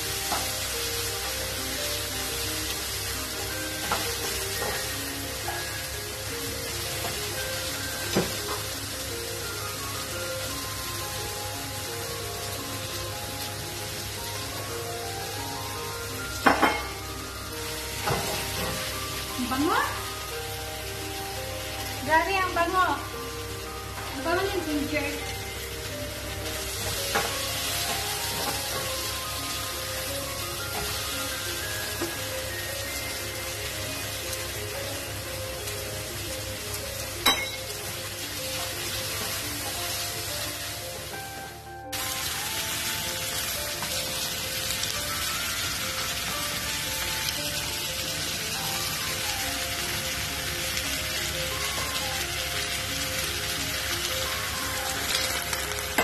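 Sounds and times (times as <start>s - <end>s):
food sizzling in frying pan: 0.0s - 56.0s.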